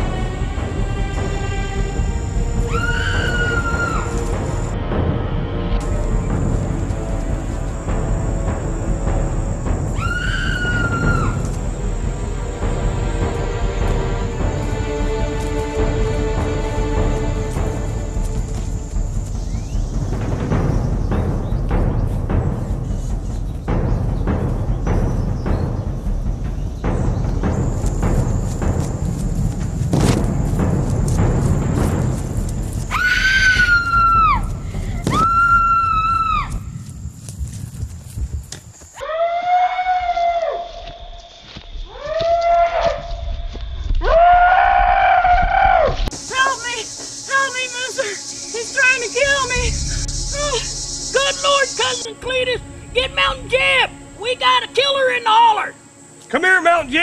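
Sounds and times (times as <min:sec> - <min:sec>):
high-pitched screams: 0:02.7 - 0:04.2, 0:09.9 - 0:11.5, 0:32.9 - 0:34.5, 0:35.1 - 0:36.6
footfalls running through brush: 0:13.8 - 0:50.5.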